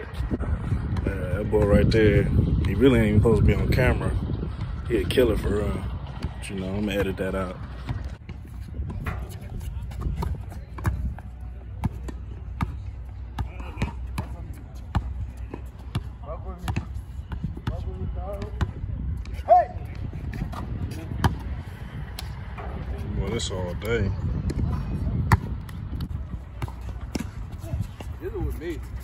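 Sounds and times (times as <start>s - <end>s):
players' voices: 0.0s - 29.0s
basketball bouncing on hard court: 13.4s - 19.4s.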